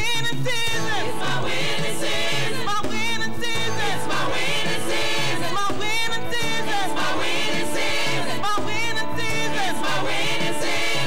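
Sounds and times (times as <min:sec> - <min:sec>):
gospel singers singing together: 0:00.0 - 0:11.0
band accompaniment with steady beat: 0:00.8 - 0:11.0.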